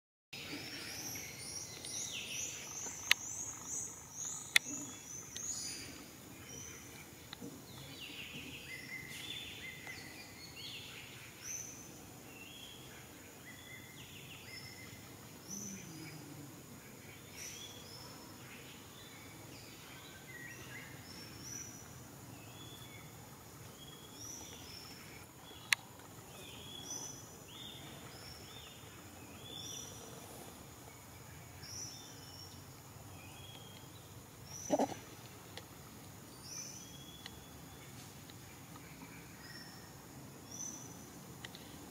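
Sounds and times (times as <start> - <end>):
faint steady hiss: 0.4 - 41.9
birds whistling and trilling: 7.8 - 11.8
macaque call: 34.6 - 35.1.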